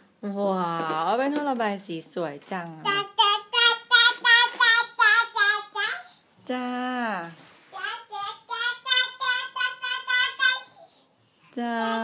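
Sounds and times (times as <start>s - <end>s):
toddler girl chanting: 2.8s - 6.2s, 7.7s - 11.1s, 11.8s - 12.0s.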